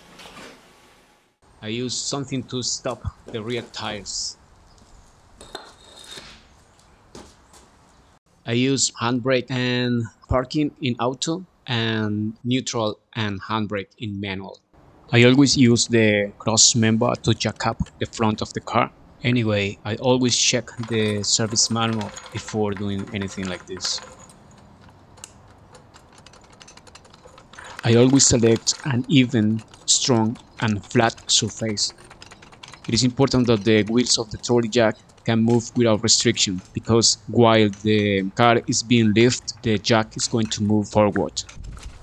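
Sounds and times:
brick clacking: 19.3 - 41.6
brick scraping on concrete: 20.6 - 30.6.

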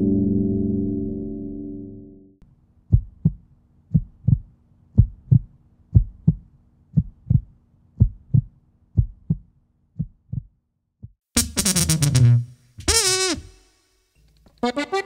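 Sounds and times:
gong ringing: 0.0 - 2.2
heartbeat thumps: 2.9 - 11.2.

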